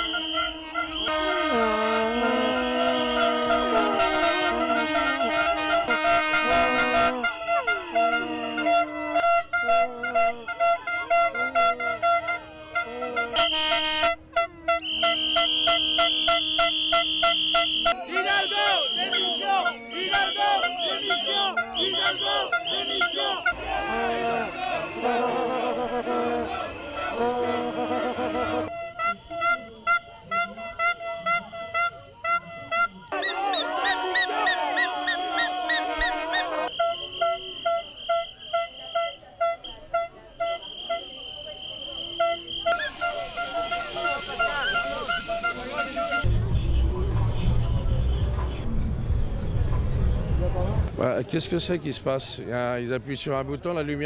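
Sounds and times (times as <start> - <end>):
air horn blasts: 0.0 - 46.8
air horns in on-off rhythm: 0.0 - 48.7.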